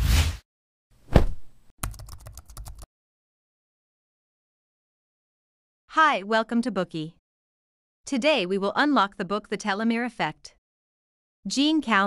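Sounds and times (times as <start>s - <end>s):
swish hit: 0.0s - 0.4s.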